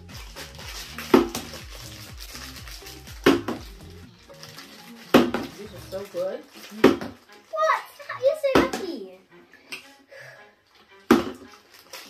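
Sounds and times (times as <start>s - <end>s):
background music with bass line: 0.0s - 7.3s
plastic bottle knocking on table: 6.8s - 7.2s, 11.1s - 11.5s.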